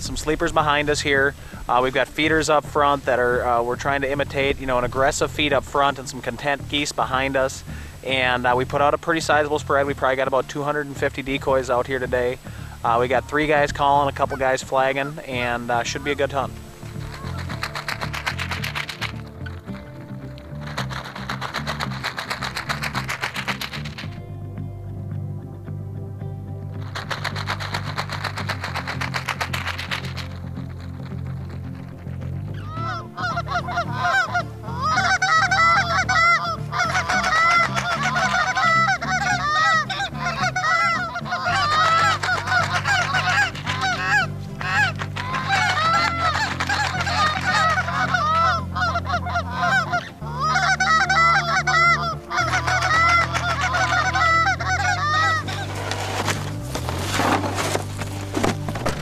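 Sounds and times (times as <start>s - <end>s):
geese honking and clucking: 0.0s - 24.2s, 26.8s - 59.0s
low music bed: 0.0s - 59.0s.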